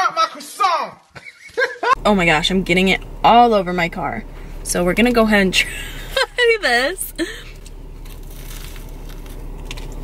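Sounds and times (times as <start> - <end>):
steady low hum: 2.0 - 10.0
crunching and chewing pastry: 7.3 - 10.0.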